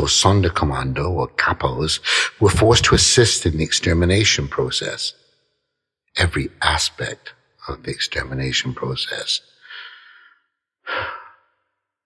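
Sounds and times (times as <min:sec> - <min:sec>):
man sighing: 0:10.9 - 0:11.4.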